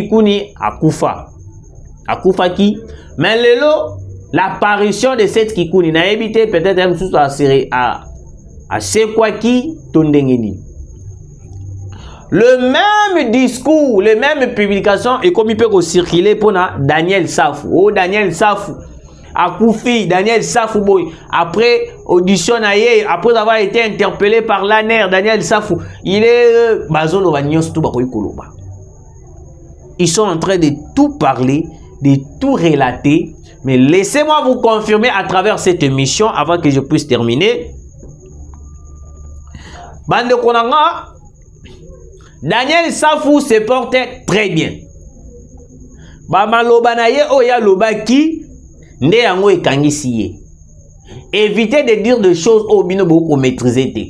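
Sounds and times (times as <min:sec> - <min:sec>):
faint high whine: 0:00.0 - 0:54.0
low hum: 0:00.0 - 0:54.0.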